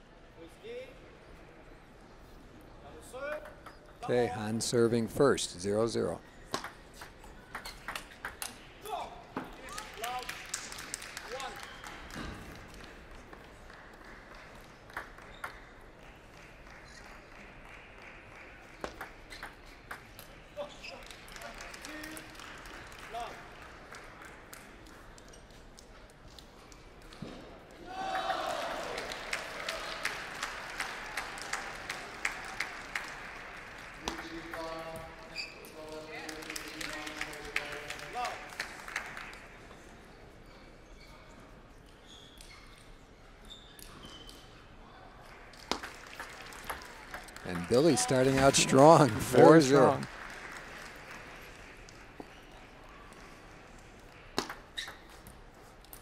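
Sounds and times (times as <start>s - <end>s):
spectators applauding: 9.6s - 15.3s, 20.9s - 24.9s, 28.1s - 34.7s, 35.8s - 39.4s, 45.3s - 52.3s.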